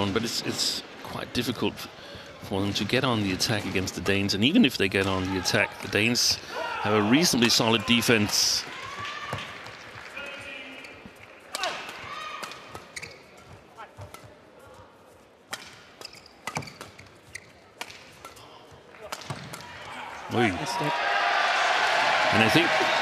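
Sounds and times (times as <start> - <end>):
shoes squeaking on court: 10.3 - 19.5
rackets striking shuttlecock: 11.5 - 14.4, 15.5 - 19.7
crowd noise: 17.8 - 23.0.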